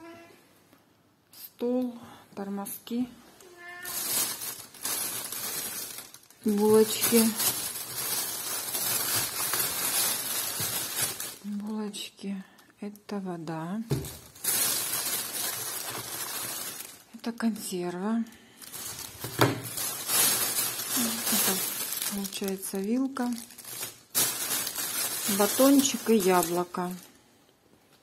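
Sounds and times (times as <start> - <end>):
cat meowing: 3.4 - 4.1
plastic bag rustling: 3.6 - 11.8, 13.9 - 17.8, 18.6 - 27.2.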